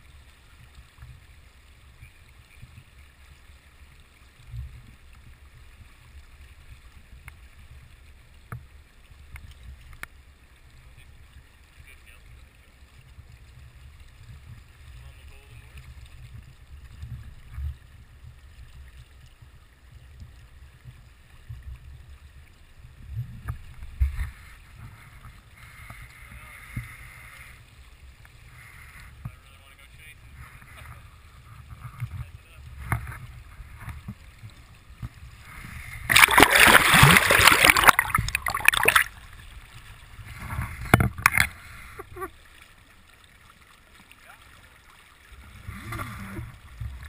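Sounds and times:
stream water low rumble: 0.0 - 47.0
river water splashing: 33.4 - 47.0
sharp clicks or splashes: 36.0 - 39.2, 40.8 - 41.6.

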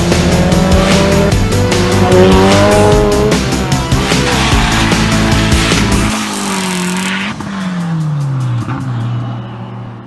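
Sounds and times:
tire noise: 0.0 - 10.0.

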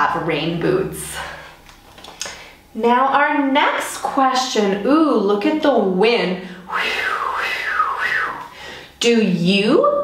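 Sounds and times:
woman imitating wind: 6.7 - 8.5.

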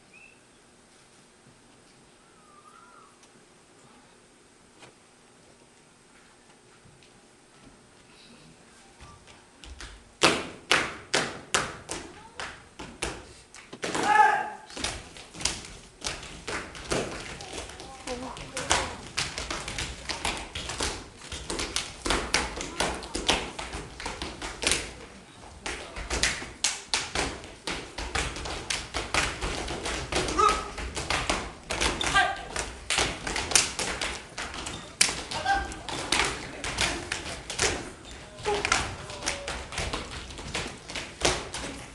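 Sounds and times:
percussive beat of taps and thuds: 9.6 - 14.1, 14.8 - 25.0, 25.6 - 41.8.

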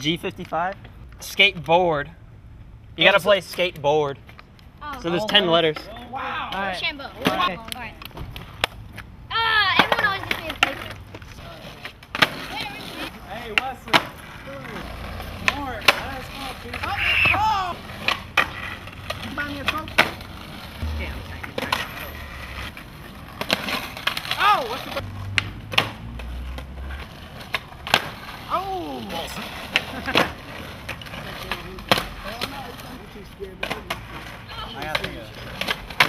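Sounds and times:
skateboard wheels rolling: 3.0 - 36.0
skateboard clacks: 9.6 - 36.0.

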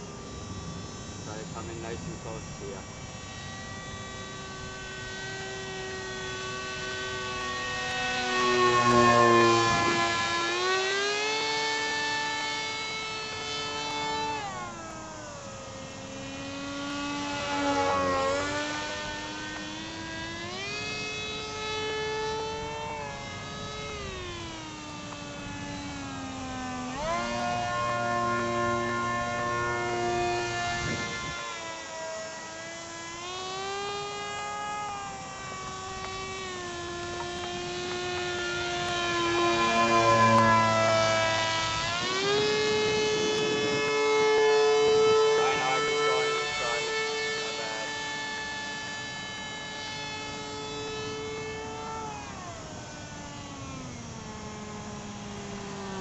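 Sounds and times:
model airplane motor buzzing: 0.0 - 56.0.

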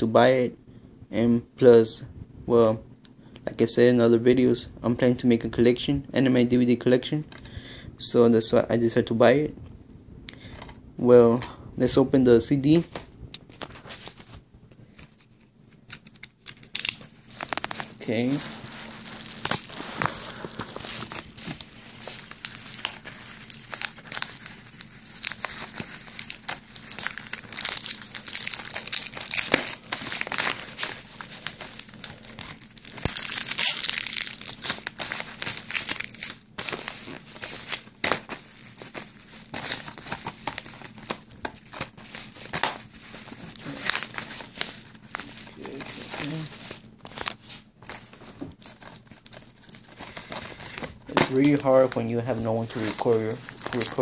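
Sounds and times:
plastic wrapping crinkling and tearing: 13.4 - 54.0.

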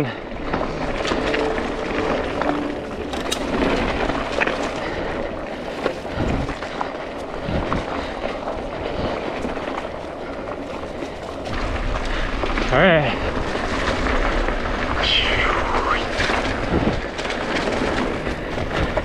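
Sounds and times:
bike tyres rushing on dirt: 0.0 - 19.0
bike clicks and knocks: 0.3 - 12.7, 16.2 - 19.0.

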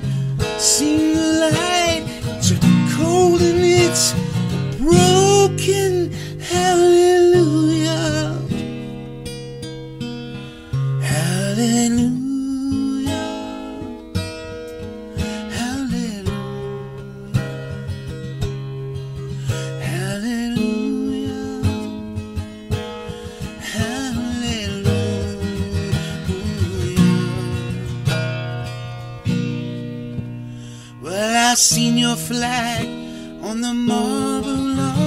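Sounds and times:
acoustic guitar strummed and picked: 0.0 - 35.0
wordless vocal phrases: 0.7 - 8.4.

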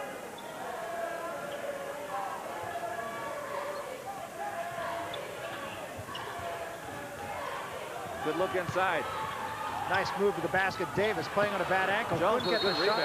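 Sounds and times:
crowd voices: 0.0 - 13.0.

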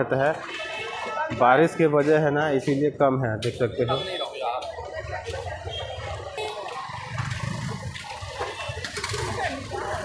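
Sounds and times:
crowd chatter: 0.0 - 10.0
traffic noise: 0.0 - 10.0.

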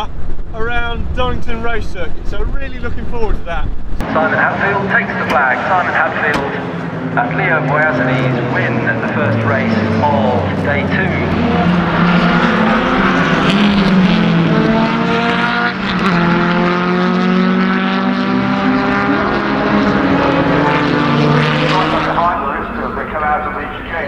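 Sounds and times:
racing car engines accelerating: 3.9 - 24.0.

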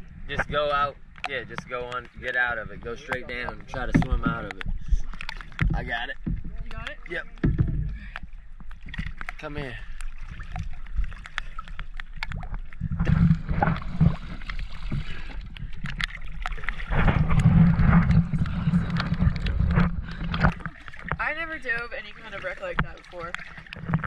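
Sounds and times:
seawater sloshing and splashing: 0.0 - 24.0.

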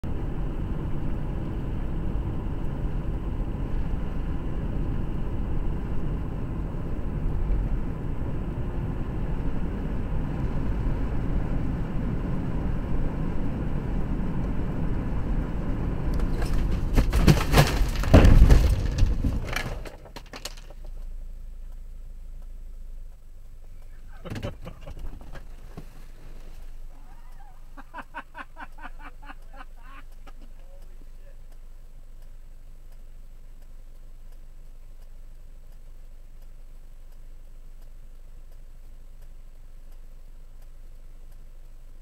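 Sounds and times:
car road and engine noise: 0.0 - 42.0
car striking deer knocks and thuds: 16.1 - 21.1, 23.8 - 26.7.

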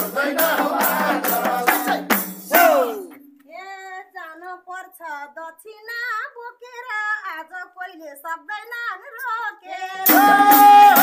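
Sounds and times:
woman singing unaccompanied: 3.5 - 11.0.

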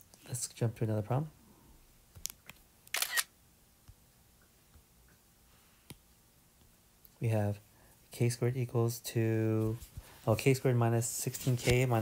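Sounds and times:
camera shutter click: 2.9 - 3.3.

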